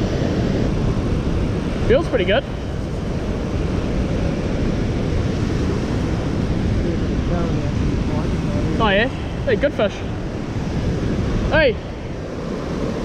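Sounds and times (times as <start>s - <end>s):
deep rumble of current: 0.0s - 13.0s
turbulent water rushing: 0.0s - 13.0s.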